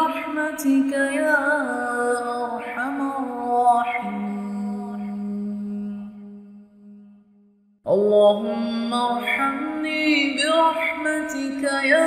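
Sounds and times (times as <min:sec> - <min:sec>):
person chanting a slow melody: 0:00.0 - 0:12.0.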